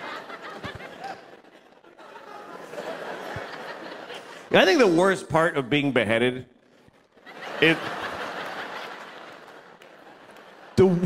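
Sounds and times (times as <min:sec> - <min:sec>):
audience laughing: 0:00.0 - 0:04.5, 0:07.2 - 0:11.0.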